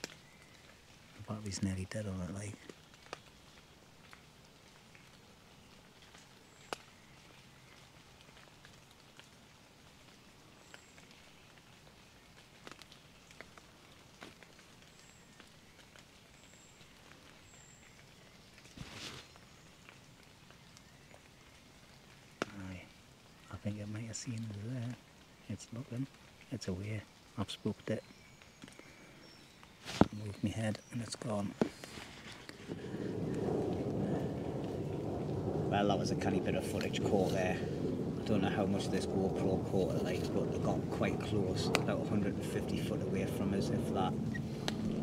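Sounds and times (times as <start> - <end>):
rain patter: 0.0 - 45.0
brief rustle: 18.6 - 19.4.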